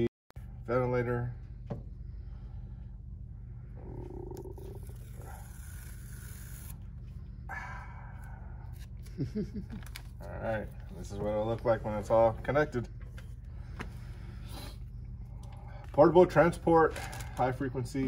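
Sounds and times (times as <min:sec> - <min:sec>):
machine pulsing: 0:03.3 - 0:08.9.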